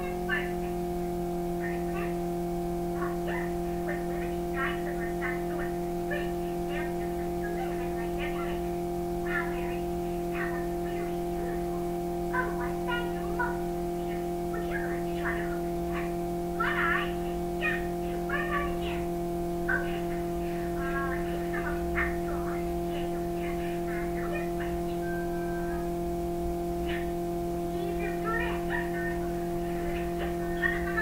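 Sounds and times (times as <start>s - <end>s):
steady low hum: 0.0s - 31.0s
cartoon voices from television: 3.0s - 19.1s, 19.7s - 25.9s, 26.9s - 31.0s.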